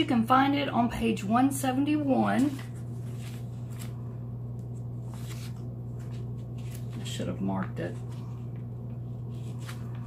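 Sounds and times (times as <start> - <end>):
steady low hum: 0.0 - 10.0
paper pages turning: 2.2 - 4.0, 4.6 - 10.0.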